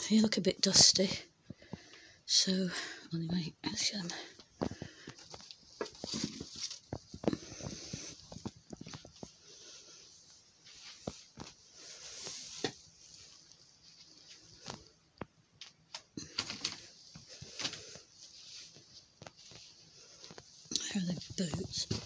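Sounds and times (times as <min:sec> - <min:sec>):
rustling: 0:04.2 - 0:22.0.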